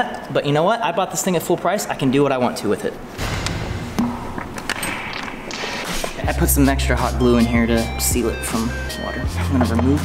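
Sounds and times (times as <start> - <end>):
sharp knock: 3.2 - 6.1.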